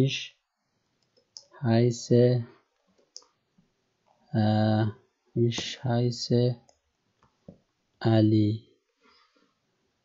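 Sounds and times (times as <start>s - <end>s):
man holding a drawn-out vowel: 0.0s - 0.3s, 1.6s - 2.4s.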